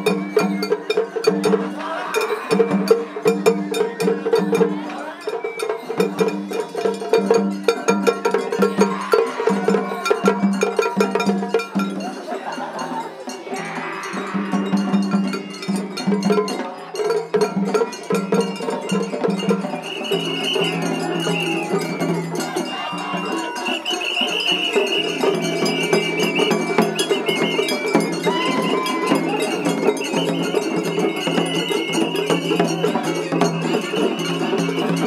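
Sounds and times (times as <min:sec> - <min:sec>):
bamboo flute melody: 0:00.0 - 0:06.9, 0:18.0 - 0:35.0
festival music: 0:00.0 - 0:35.0.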